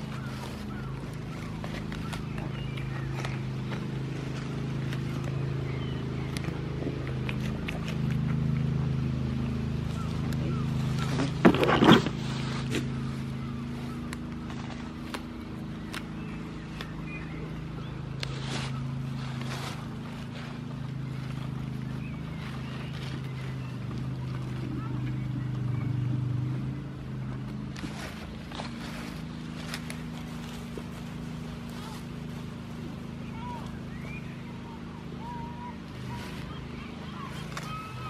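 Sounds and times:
goats tearing and crunching grass: 0.0 - 38.0
low engine hum: 0.0 - 38.0.

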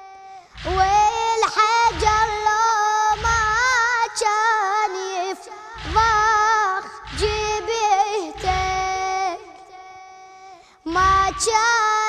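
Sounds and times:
boy chanting: 0.0 - 12.0
low pulsing sound: 0.6 - 3.9, 5.8 - 9.5, 10.9 - 11.6.

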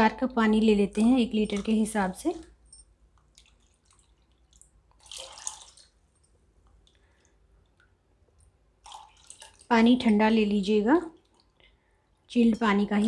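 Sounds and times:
water pouring into a bowl: 3.3 - 6.2, 8.8 - 10.1.

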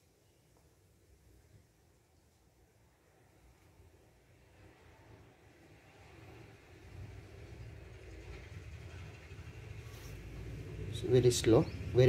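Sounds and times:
faint low rumble: 0.5 - 12.0.

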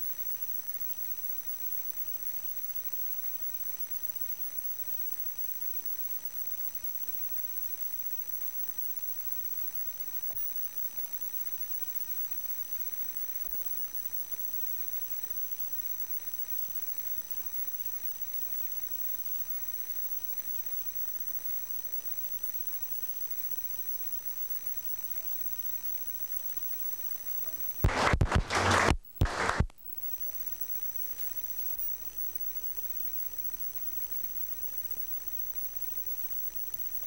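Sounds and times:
faint high whine: 0.0 - 37.0
tape hiss: 0.0 - 37.0
loud crackling burst: 27.8 - 29.7.

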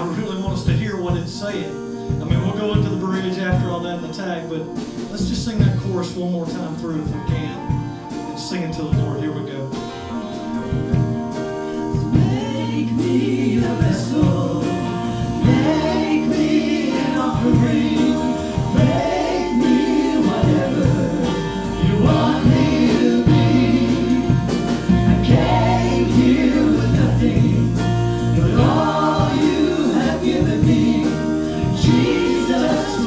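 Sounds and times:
worship band playing: 0.0 - 33.0
voices singing together: 11.8 - 33.0.

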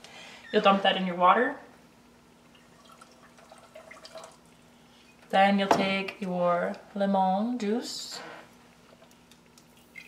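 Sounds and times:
low steady hum: 0.0 - 10.0
sugar pouring into water: 2.6 - 4.4.

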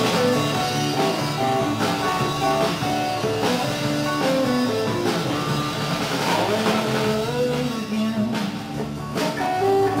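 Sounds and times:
drum kit with cymbal hits: 0.0 - 10.0
electric bass: 0.0 - 10.0
electric guitar: 0.0 - 10.0.

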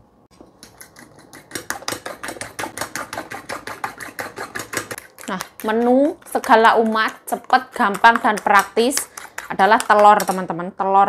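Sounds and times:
metal spoon beating eggs in bowl: 0.4 - 10.8.

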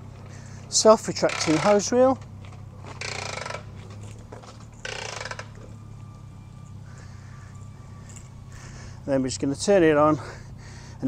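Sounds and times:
hose reel clicking: 1.1 - 1.9, 4.8 - 5.5.

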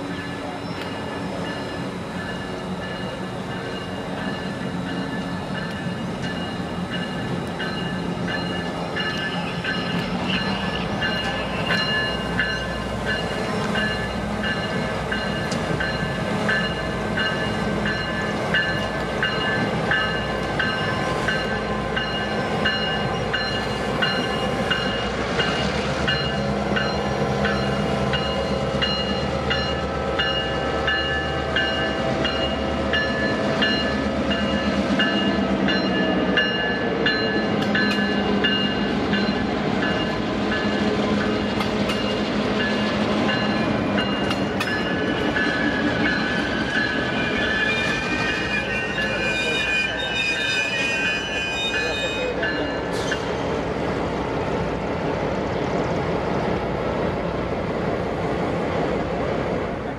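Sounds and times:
diesel locomotive engine drone: 0.0 - 59.9
train cars rolling over rails: 0.0 - 59.9
high squeal: 45.6 - 53.3.

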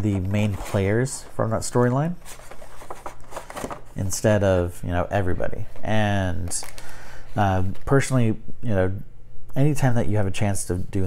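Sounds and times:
cards and packaging rustling: 0.0 - 8.2.

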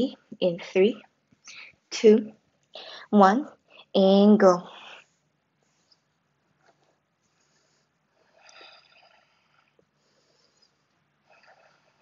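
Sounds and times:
woman breathing: 1.4 - 1.9, 2.7 - 3.9, 7.2 - 12.0.

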